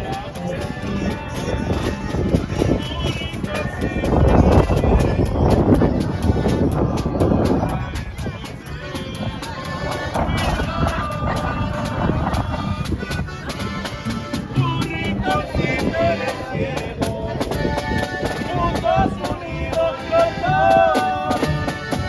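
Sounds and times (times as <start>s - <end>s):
people talking: 0.0s - 21.7s
acoustic guitars strumming: 0.0s - 22.0s
bass guitar playing: 0.0s - 22.0s.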